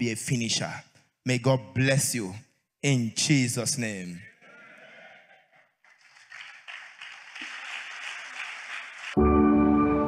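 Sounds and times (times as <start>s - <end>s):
crowd applauding: 5.2s - 9.2s.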